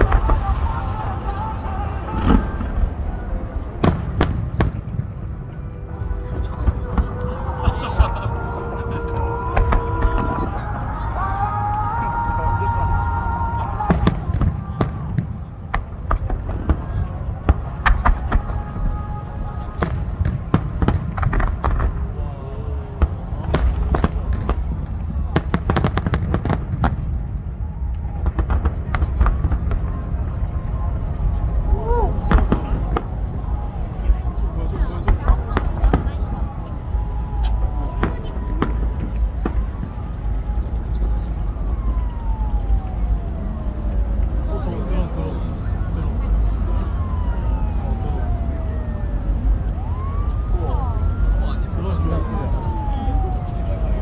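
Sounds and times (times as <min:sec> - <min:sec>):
firework bangs and crackles: 0:00.0 - 0:54.0
low rumble: 0:00.0 - 0:54.0.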